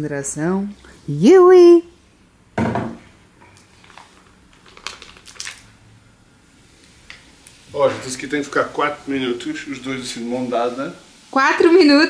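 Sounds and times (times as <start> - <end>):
paper bag crinkling: 3.7 - 5.7.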